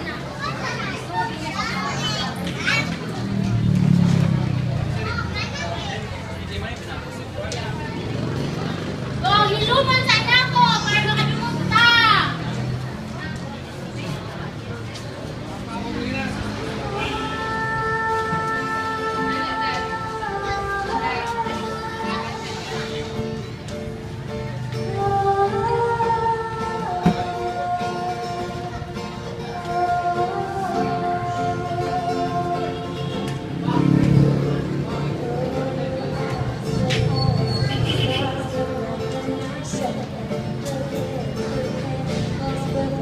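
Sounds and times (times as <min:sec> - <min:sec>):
voices talking and calling out: 0:00.0 - 0:43.0
woman singing into microphone: 0:16.8 - 0:22.9, 0:24.8 - 0:34.0, 0:34.7 - 0:43.0
acoustic guitar chords: 0:16.8 - 0:43.0.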